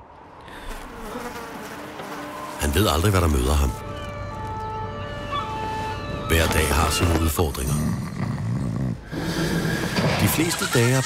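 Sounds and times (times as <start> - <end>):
man snoring: 7.6 - 9.8.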